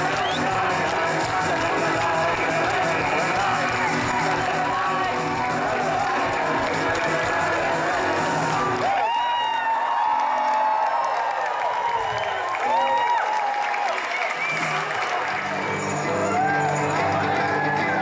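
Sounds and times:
crowd cheering and whooping: 0.0 - 18.0.

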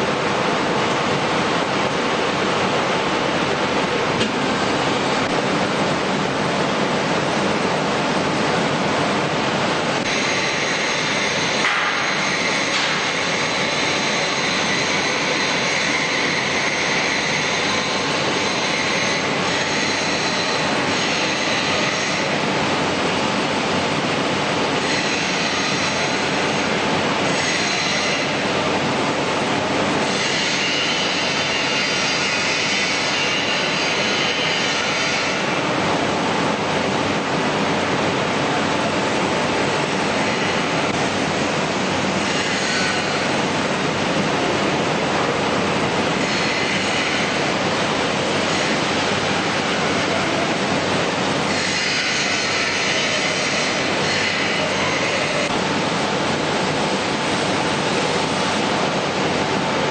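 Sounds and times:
loud factory machinery: 0.0 - 59.9.

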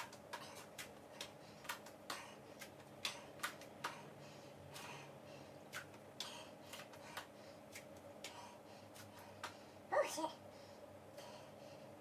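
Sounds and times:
hands tapping on foam mat: 0.0 - 4.0.

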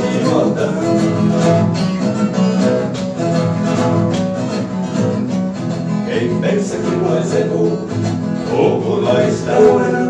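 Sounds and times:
strummed acoustic guitar: 0.0 - 10.0.

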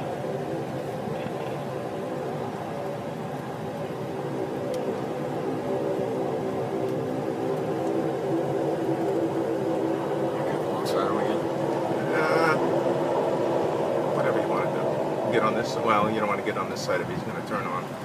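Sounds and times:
car engine and road drone: 0.0 - 18.0.

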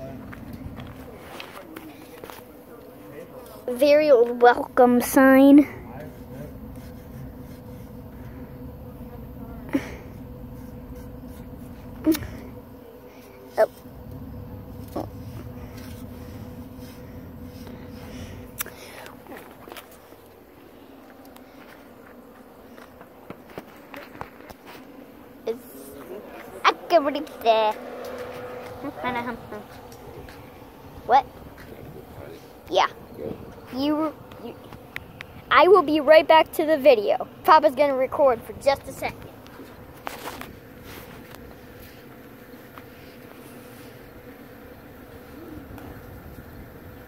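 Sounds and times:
footsteps on mulch and concrete: 0.0 - 8.4, 14.8 - 35.9, 38.4 - 44.5
faint steady hum: 0.0 - 47.0
footsteps on concrete: 29.6 - 30.6.

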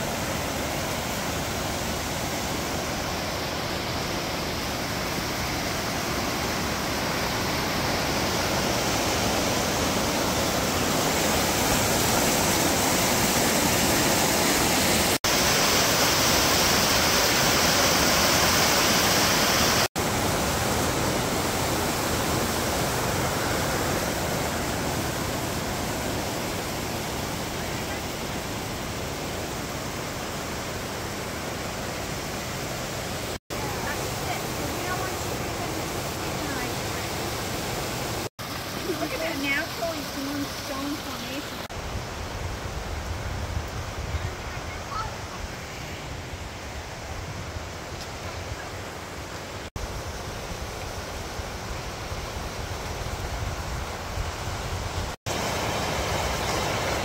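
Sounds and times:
creek rushing over boulders: 0.0 - 57.0.

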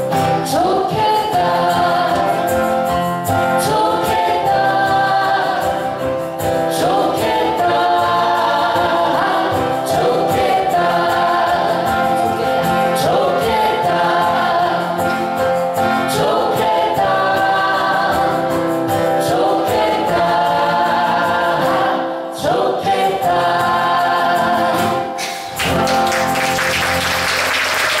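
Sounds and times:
acoustic guitar: 0.0 - 28.0
group singing in harmony: 0.0 - 28.0
audience applause: 25.3 - 28.0.

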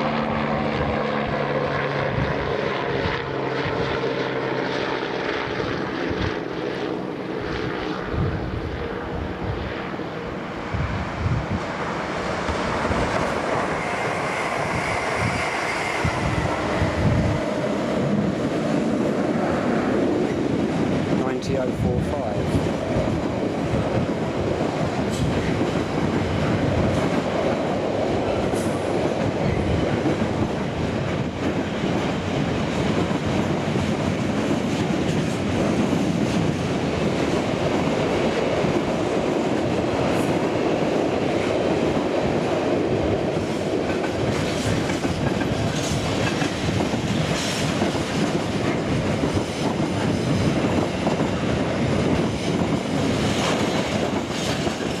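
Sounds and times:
train wheels rumbling on rail: 4.8 - 55.0.

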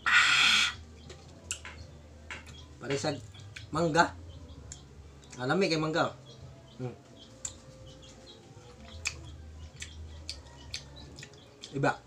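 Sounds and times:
man shrieking: 0.0 - 0.8.

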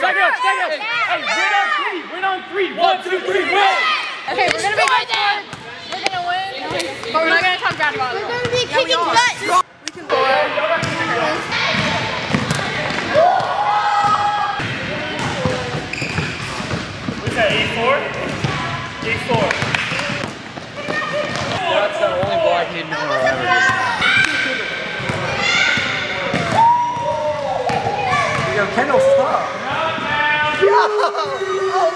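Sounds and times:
kids shouting and chattering: 0.0 - 15.1, 20.7 - 31.9.

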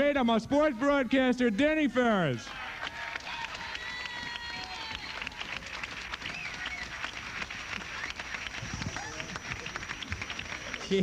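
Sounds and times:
audience applause: 2.5 - 11.0.

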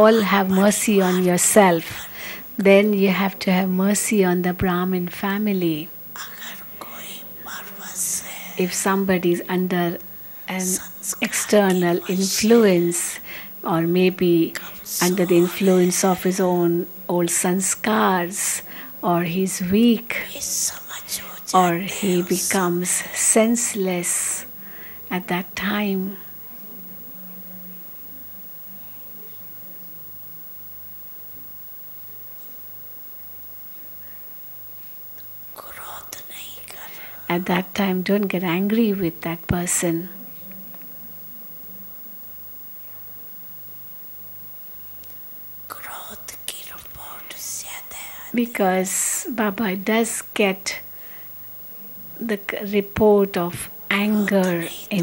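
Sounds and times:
people talking: 0.0 - 30.1, 36.6 - 40.9, 48.4 - 50.8, 51.8 - 55.0
faint electrical hum: 0.0 - 55.0
person whispering: 6.2 - 9.4, 10.5 - 13.2, 14.5 - 16.4, 20.1 - 24.5, 35.6 - 37.0, 45.7 - 48.6.

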